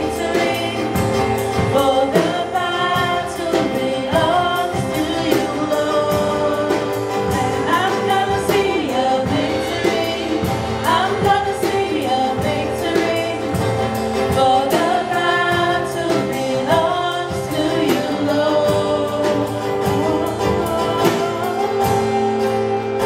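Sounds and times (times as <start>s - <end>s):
acoustic guitar: 0.0s - 23.0s
person singing lead vocal: 0.0s - 23.0s
steady drum beat: 0.0s - 23.0s.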